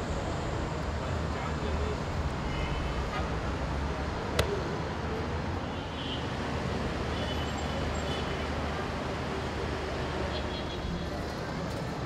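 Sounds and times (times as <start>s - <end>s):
traffic rumble: 0.0s - 5.6s.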